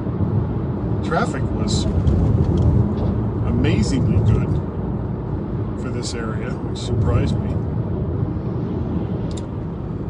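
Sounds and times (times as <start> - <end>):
car engine hum: 0.0 - 10.0
road and tyre noise: 0.0 - 10.0.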